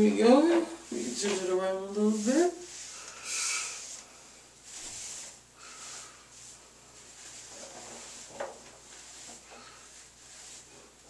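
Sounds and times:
rustling of synthetic yarn locs: 0.0s - 11.0s.

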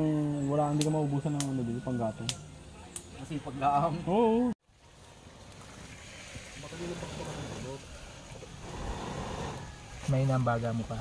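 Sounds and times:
air blown onto fire: 5.6s - 10.1s.

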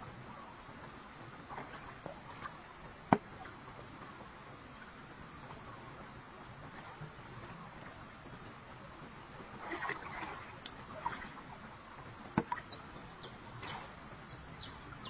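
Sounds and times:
faint outdoor hiss: 0.0s - 15.0s
water splashing: 9.4s - 15.0s.

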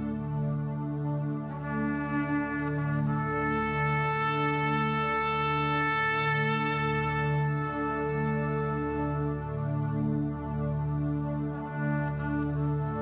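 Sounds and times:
soft background music: 0.0s - 13.0s.

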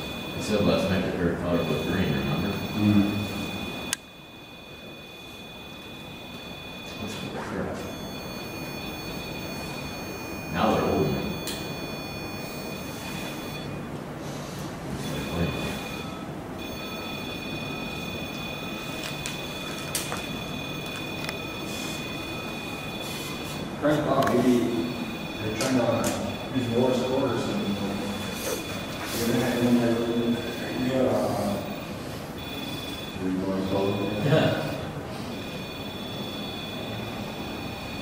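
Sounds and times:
high-pitched electronic whine: 0.0s - 13.8s, 15.0s - 38.0s.

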